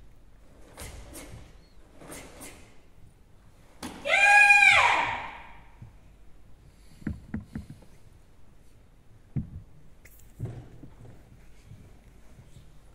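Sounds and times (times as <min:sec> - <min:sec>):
child shouting kiai: 0:03.8 - 0:05.6.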